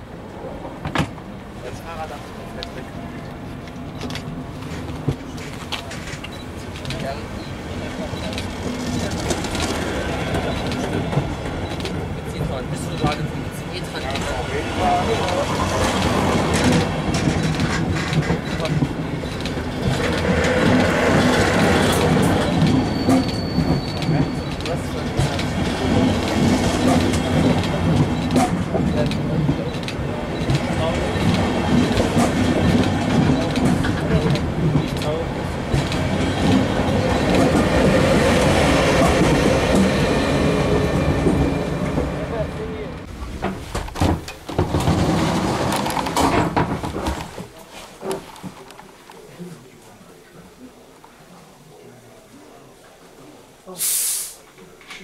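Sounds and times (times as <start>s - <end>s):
electric locomotive passing: 0.0s - 43.8s
train wheels clicking over rail joints: 3.6s - 42.2s, 43.3s - 48.9s
high squeal: 22.3s - 24.5s.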